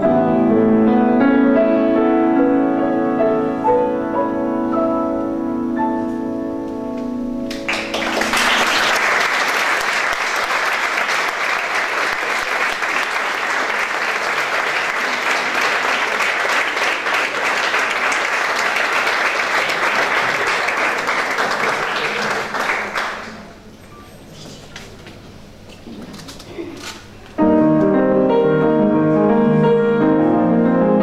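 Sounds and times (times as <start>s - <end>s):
piano notes: 0.0s - 10.3s, 27.4s - 31.0s
audience applauding: 7.5s - 23.6s.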